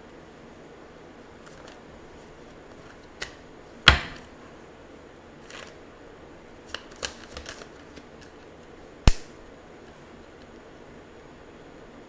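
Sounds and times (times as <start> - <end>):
cards clicking and tapping: 6.7 - 8.4
sharp card snap: 9.0 - 9.4.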